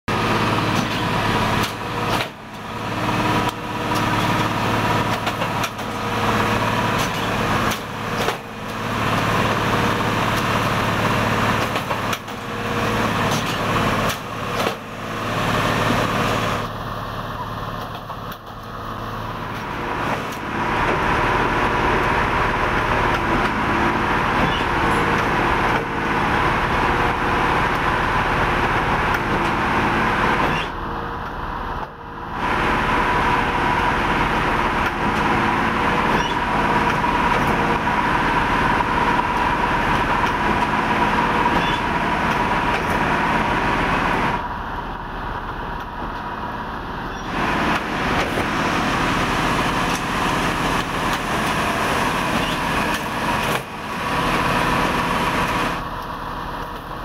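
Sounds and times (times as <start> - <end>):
diesel engine humming: 0.1 - 57.0
tamping machine working noise: 0.1 - 57.0.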